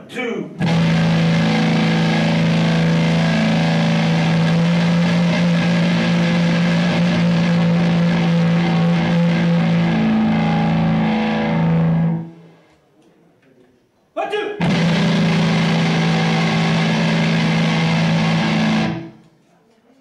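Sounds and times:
distorted electric guitar drone: 0.6 - 12.6, 14.6 - 19.2.

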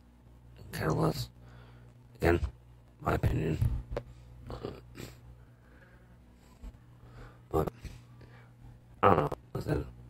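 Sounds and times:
steady low hum: 0.0 - 10.0
man saying uh: 7.5 - 7.8.

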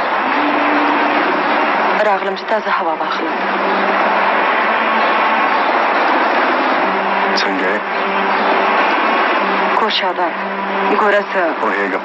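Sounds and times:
loud rushing noise: 0.0 - 11.8.

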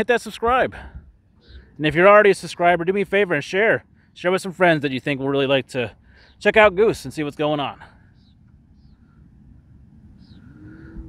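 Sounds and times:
distant vehicle engine: 0.0 - 11.0
low rumble: 7.8 - 11.0.

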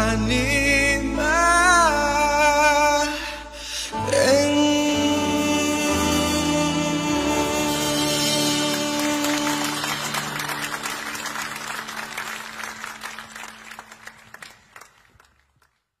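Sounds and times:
live band and singers chord: 0.0 - 13.1
audience applause: 8.5 - 15.9.

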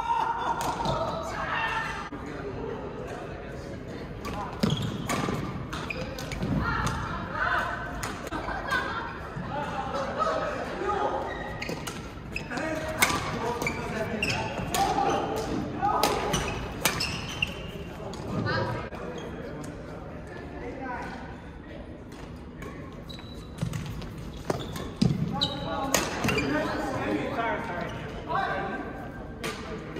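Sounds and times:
voices in a hall: 0.0 - 29.9.

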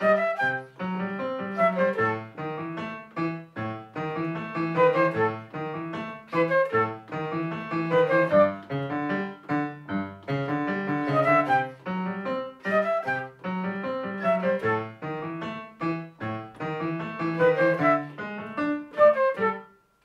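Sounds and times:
flute melody: 0.0 - 20.0
keyboard piano chords: 0.0 - 20.0.

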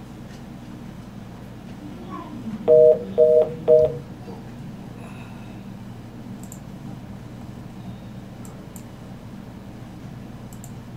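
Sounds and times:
low background hum: 0.0 - 10.9
two-note telephone beeps: 2.7 - 4.0.

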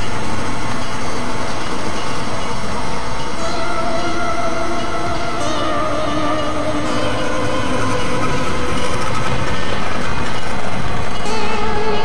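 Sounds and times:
electronic noise drone music: 0.0 - 12.0.

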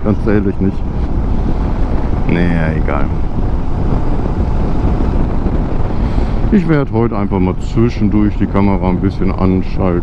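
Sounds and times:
wind rush over microphone: 0.0 - 10.0.

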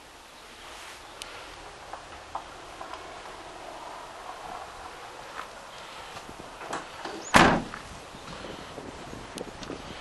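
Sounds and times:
van door slamming shut: 6.7 - 7.8.

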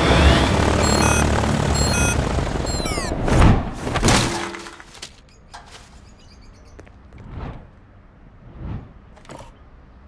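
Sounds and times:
metal trash can lid crashing: 4.0 - 4.8.

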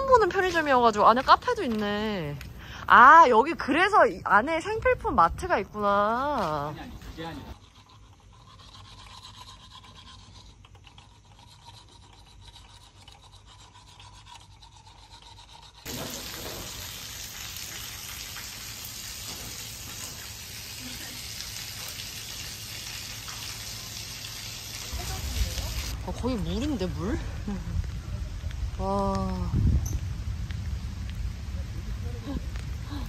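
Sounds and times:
heavy rain falling: 15.9 - 26.0.

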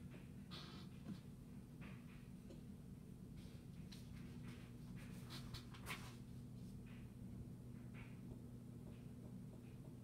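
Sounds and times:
low electrical hum: 0.0 - 10.0
faint rustling and scratching: 3.4 - 7.0.

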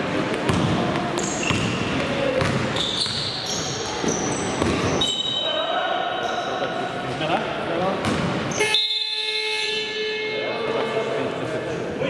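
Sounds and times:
basketball bouncing: 0.3 - 3.3, 8.0 - 8.4
shoes squeaking: 1.0 - 5.4
loud held horn tone: 8.5 - 10.8.

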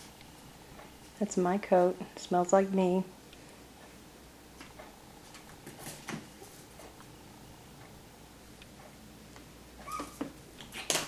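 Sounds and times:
puppy whimpering: 9.8 - 10.2.

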